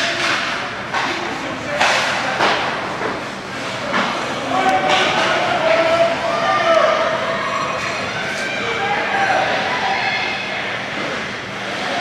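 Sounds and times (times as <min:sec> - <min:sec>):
sharp knocks of sticks and puck: 0:00.0 - 0:01.2, 0:01.8 - 0:03.2.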